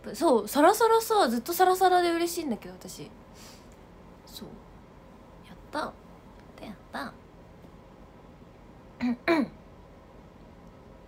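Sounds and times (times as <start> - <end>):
woman clearing her throat: 9.0 - 9.6.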